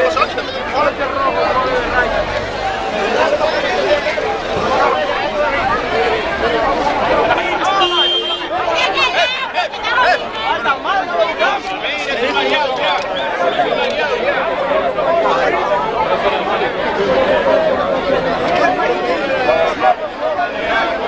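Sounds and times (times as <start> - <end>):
crowd chatter: 0.0 - 21.0.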